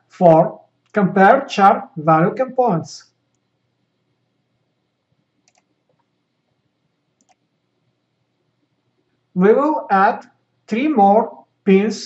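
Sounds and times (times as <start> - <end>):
faint computer mouse clicks: 3.3 - 3.5, 5.4 - 6.1, 7.2 - 7.5.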